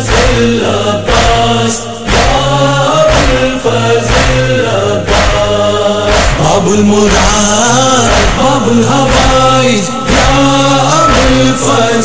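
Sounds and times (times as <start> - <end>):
heavy beat: 0.0 - 12.0
male chorus chanting in unison: 0.0 - 12.0.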